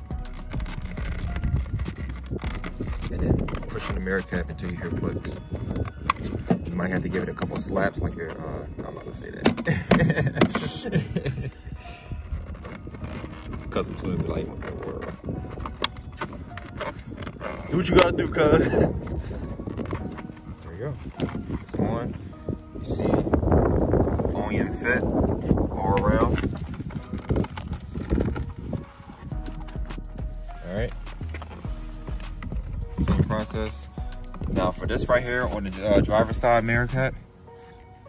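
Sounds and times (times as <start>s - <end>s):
man laughing: 9.6s - 11.7s
plastic tabs snapping: 12.4s - 18.1s.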